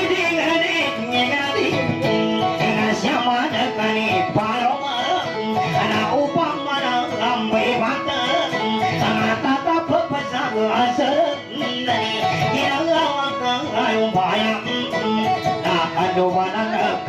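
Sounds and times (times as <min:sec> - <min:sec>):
person singing: 0:00.0 - 0:17.0
plucked guitar melody: 0:00.0 - 0:17.0.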